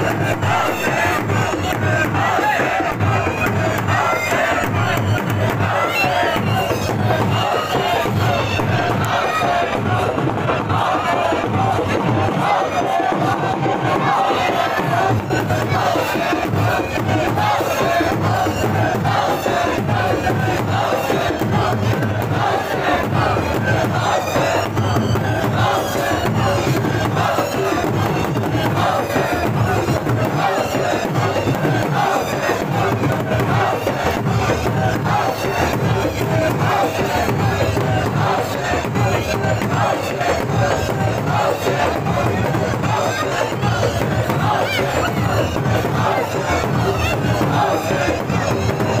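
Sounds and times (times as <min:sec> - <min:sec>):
crowd chanting: 0:00.0 - 0:49.0.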